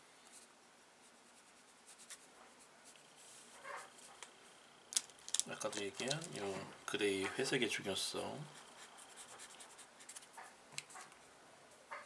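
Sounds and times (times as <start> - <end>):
faint brush strokes on paper: 0.2 - 4.6, 5.6 - 11.8.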